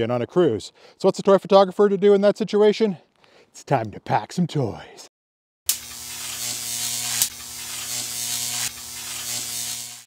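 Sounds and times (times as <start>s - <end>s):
electric buzz with hum and hiss: 5.7s - 10.0s
sharp electric crackle: 5.7s - 10.0s.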